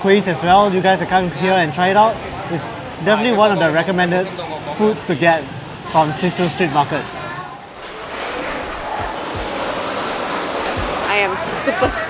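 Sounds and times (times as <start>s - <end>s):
busy market hall noise: 0.0s - 12.0s.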